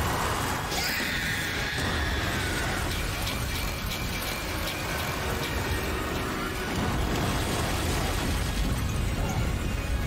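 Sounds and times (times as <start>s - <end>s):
rumbling rush of sound effects: 0.0s - 10.0s.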